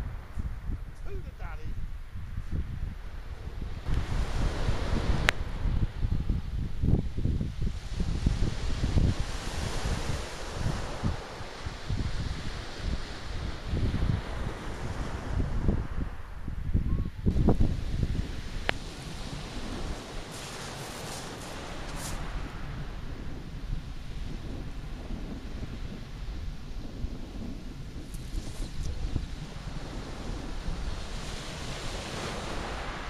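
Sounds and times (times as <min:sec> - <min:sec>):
wind buffeting microphone: 0:00.0 - 0:33.0
waves breaking on shingle: 0:18.7 - 0:22.7.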